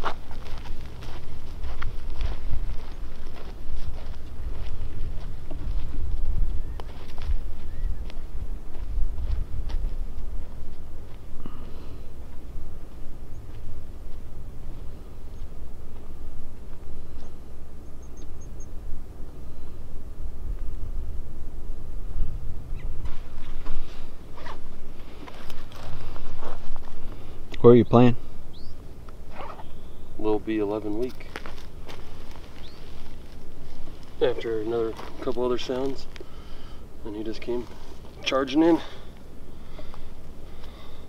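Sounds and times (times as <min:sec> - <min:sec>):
footsteps on dry dirt and brush: 0:00.0 - 0:17.8, 0:22.5 - 0:27.5, 0:28.4 - 0:41.0
wind rumble on microphone: 0:00.0 - 0:27.5.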